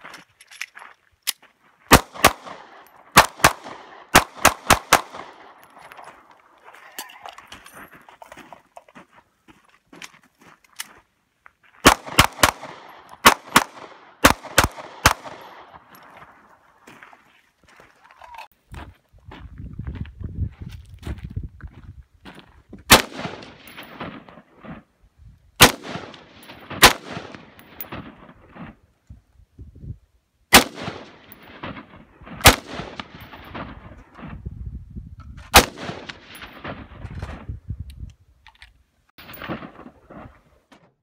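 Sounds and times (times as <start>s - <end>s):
rifle shots echoing: 1.9s - 5.8s, 11.8s - 15.9s, 22.9s - 24.9s, 25.6s - 28.8s, 30.5s - 34.0s, 35.5s - 37.0s, 39.2s - 40.2s.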